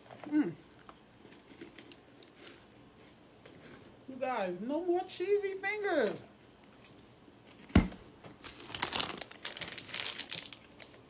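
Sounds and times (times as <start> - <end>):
light rustling in plastic jar: 8.4 - 11.0.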